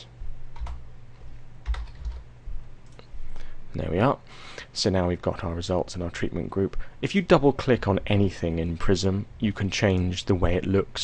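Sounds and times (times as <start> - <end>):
computer keyboard keystrokes: 0.5 - 0.8, 1.6 - 2.2.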